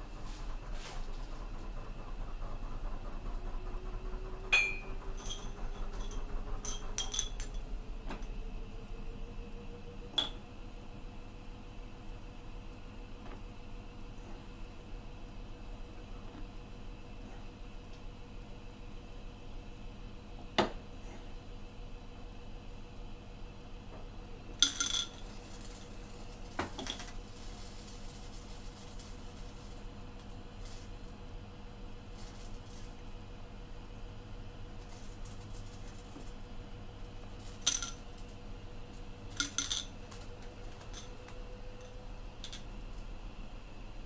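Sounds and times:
glass bottles clinking: 0:04.6 - 0:07.5.

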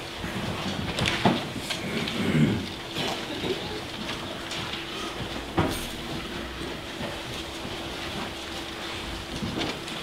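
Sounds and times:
low hum of room noise: 0:00.0 - 0:10.0.

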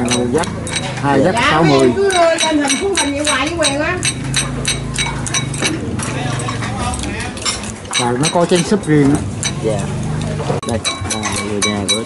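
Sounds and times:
metal spoon clinking on bowl: 0:00.0 - 0:12.0.

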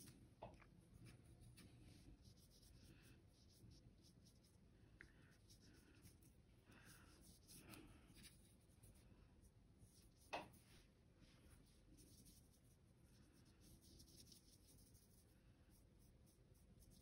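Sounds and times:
paintbrush strokes on paper: 0:00.8 - 0:17.0.

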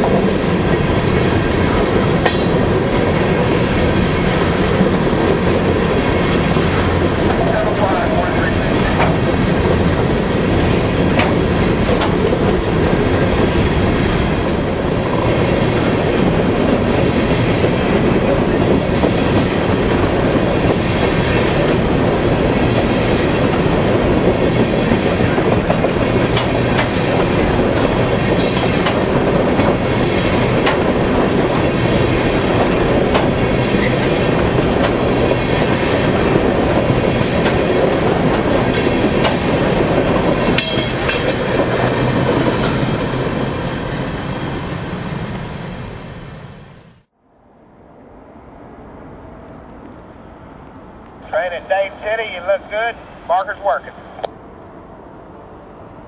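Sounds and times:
train wheels rumbling on rail: 0:00.0 - 0:47.1
wheels clattering over rail joints: 0:08.3 - 0:43.4.

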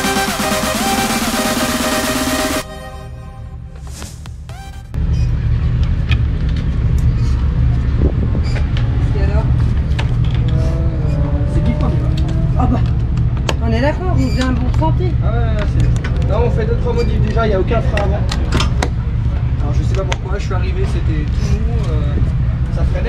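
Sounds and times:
loud low rumble: 0:00.0 - 0:16.9
indistinct voices: 0:08.6 - 0:21.8.

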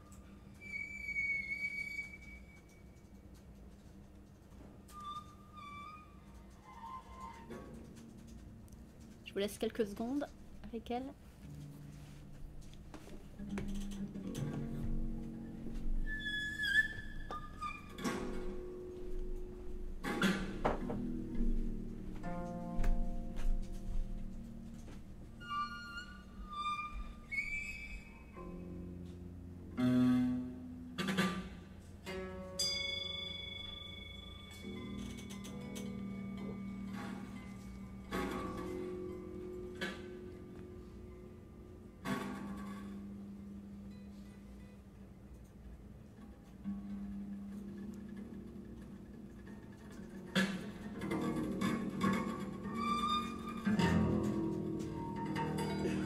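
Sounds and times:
high whistling harmonics: 0:00.5 - 0:03.0, 0:15.9 - 0:18.0, 0:25.4 - 0:28.5.

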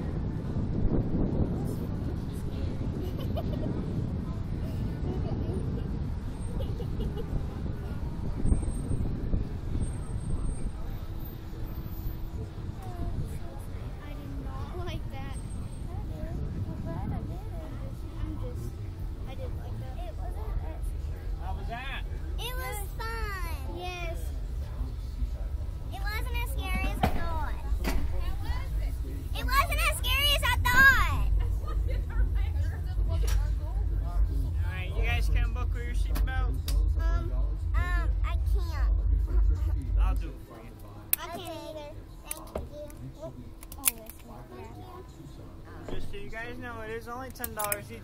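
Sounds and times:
wind buffeting microphone: 0:00.0 - 0:43.6
faint voices: 0:00.0 - 0:48.0
steady low rumble: 0:00.0 - 0:48.0
girls talking and exclaiming: 0:12.8 - 0:21.2, 0:22.3 - 0:24.4, 0:25.9 - 0:34.0, 0:37.0 - 0:39.9, 0:41.2 - 0:45.2.

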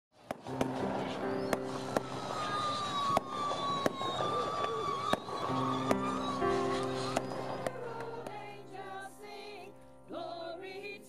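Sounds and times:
fireworks bangs: 0:00.2 - 0:09.0
falling whistling tone: 0:00.5 - 0:09.0.

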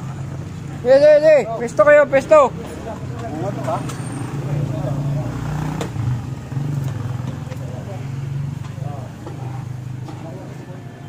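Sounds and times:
indistinct chatter of people: 0:01.5 - 0:11.0.

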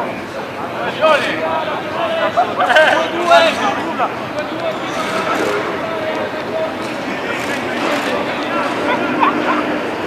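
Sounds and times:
distant voices calling out: 0:00.0 - 0:10.0.

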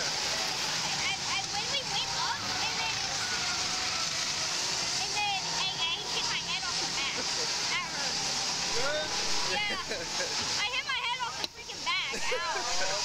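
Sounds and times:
constant rushing hiss: 0:00.0 - 0:13.0
people laughing and chattering: 0:00.0 - 0:13.0.

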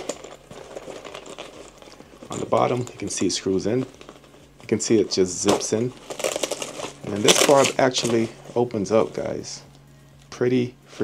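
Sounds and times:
fabric bag rustling and crinkling: 0:00.0 - 0:10.3.

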